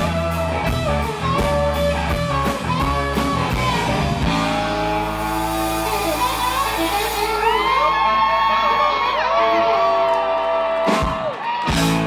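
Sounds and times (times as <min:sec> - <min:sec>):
crowd cheering and whooping: 0:03.4 - 0:12.0.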